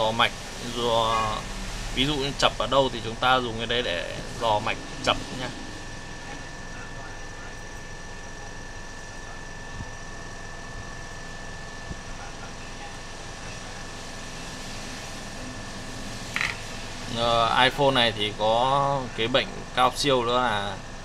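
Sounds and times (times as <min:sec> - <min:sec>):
high steady whine: 0:00.0 - 0:21.0
steady background hum: 0:00.0 - 0:21.0.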